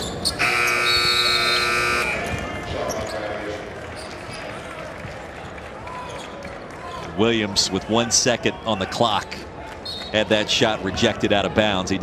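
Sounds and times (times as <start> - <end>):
arena horn blaring: 0.4 - 2.3.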